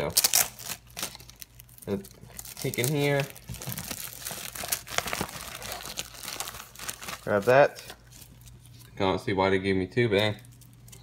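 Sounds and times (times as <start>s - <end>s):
cellophane crinkling: 0.0s - 8.9s.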